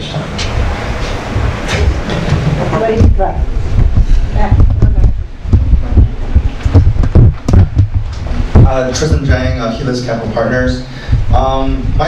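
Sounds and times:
microphone air rumble: 0.0 - 12.0
microphone handling noise: 0.2 - 9.6, 11.0 - 12.0.

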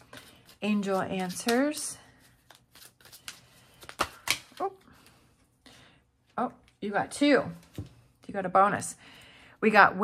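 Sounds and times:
cards being shuffled: 0.0 - 5.2.

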